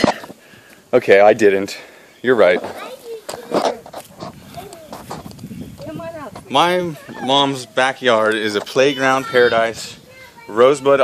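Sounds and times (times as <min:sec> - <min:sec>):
small children's voices: 0:02.4 - 0:11.0.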